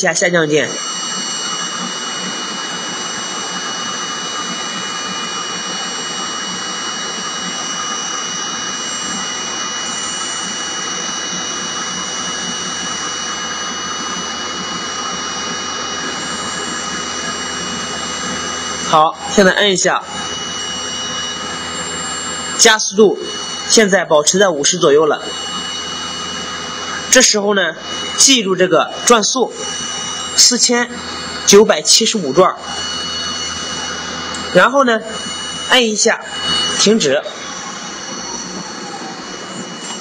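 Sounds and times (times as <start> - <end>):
faint high whining tones: 0.0 - 40.0
vibrating motor on metal: 0.0 - 40.0.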